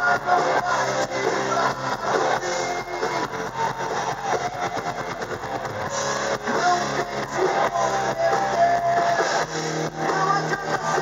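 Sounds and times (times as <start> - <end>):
hard rock band playing: 0.0 - 11.0.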